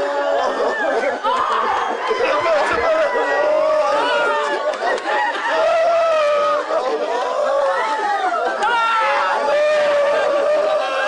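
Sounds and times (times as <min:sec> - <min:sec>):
crowd chatter: 0:00.0 - 0:11.0
women wailing and crying: 0:00.0 - 0:11.0.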